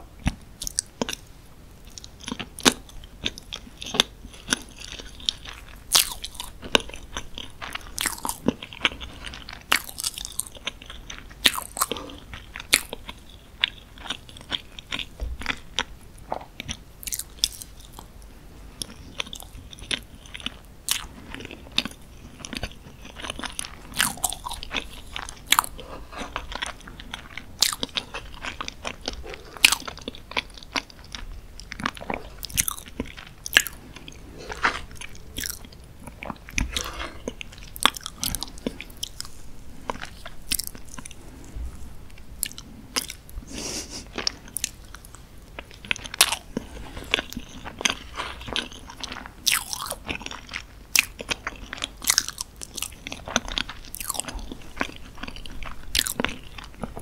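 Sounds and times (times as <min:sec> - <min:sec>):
wet sticky chewing: 0:18.8 - 0:41.2, 0:42.4 - 0:57.0.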